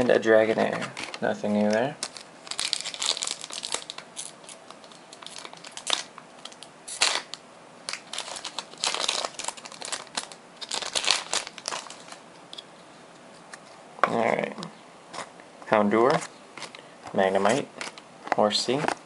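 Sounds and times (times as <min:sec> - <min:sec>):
foil wrapper crinkling and tearing: 0:00.4 - 0:12.2.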